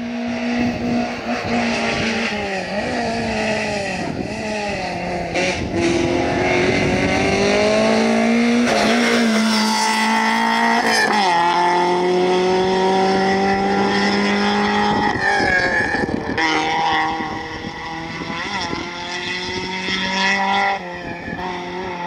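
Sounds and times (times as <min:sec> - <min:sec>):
rally car engine accelerating: 0:00.0 - 0:22.0.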